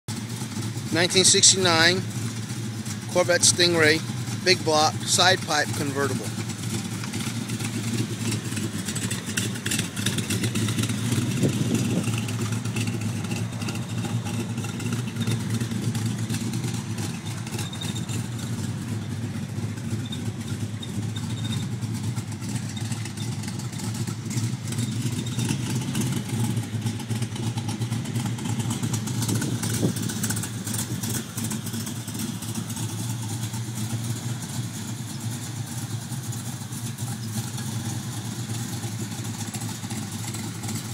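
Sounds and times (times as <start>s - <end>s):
car engine idling: 0.1s - 40.9s.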